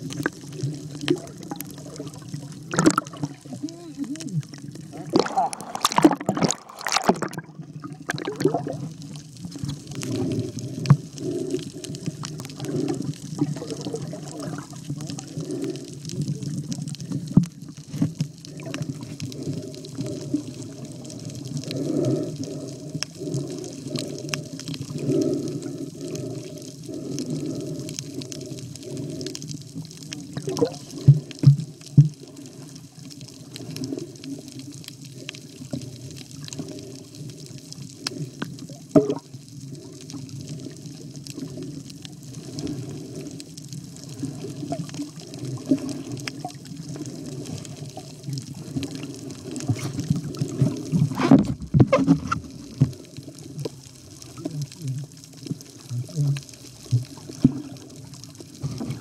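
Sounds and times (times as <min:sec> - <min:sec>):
muffled underwater sloshing and bubbling: 0:00.0 - 0:59.0.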